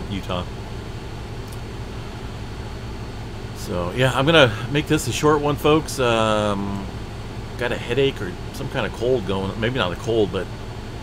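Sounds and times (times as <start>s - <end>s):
steady low hum: 0.0s - 11.0s
faint click: 1.4s - 1.7s.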